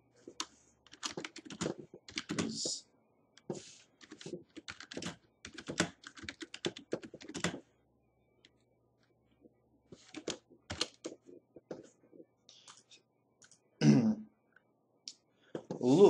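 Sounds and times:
typing on computer keyboard: 0:00.3 - 0:02.6, 0:04.0 - 0:07.6, 0:10.0 - 0:11.2.

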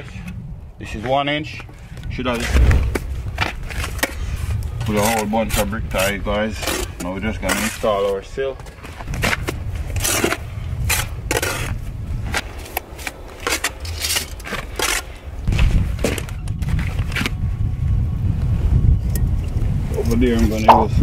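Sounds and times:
low rumble: 0:02.3 - 0:04.9.

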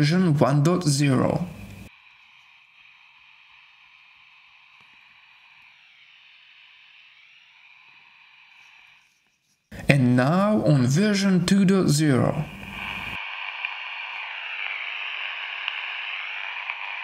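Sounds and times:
faint receiver static: 0:00.0 - 0:01.9, 0:09.7 - 0:17.0.

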